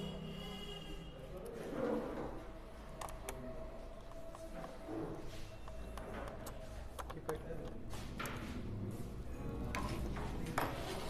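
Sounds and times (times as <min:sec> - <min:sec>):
clicks and taps of handled parts: 0:05.7 - 0:08.4.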